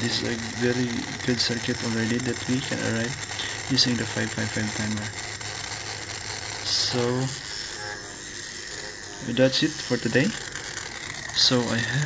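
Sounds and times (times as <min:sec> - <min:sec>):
small electric motor running: 0:00.0 - 0:12.0
steady high tone: 0:00.0 - 0:12.0.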